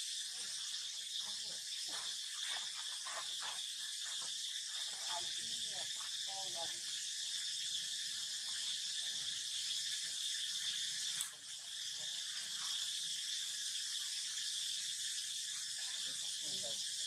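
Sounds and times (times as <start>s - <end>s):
high-pitched insect chorus: 0.0s - 11.2s, 12.1s - 17.0s.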